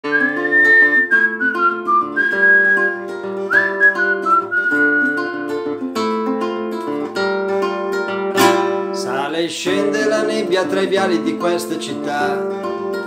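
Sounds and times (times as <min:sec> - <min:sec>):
man whistling a melody: 0:00.0 - 0:05.6
plucked classical guitar chords: 0:00.0 - 0:13.0.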